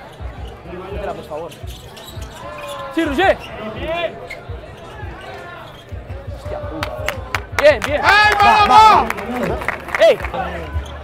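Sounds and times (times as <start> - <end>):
faint crowd voices: 0.0 - 11.0.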